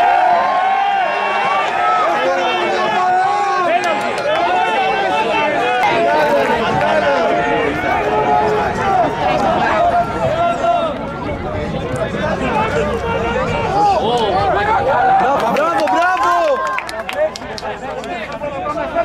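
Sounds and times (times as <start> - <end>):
voices shouting and calling: 0.0 - 19.0.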